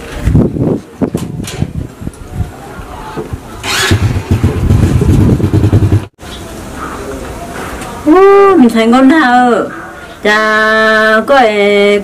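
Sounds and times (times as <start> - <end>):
steady background noise: 0.0 - 12.0
motorcycle engine running: 3.6 - 6.1.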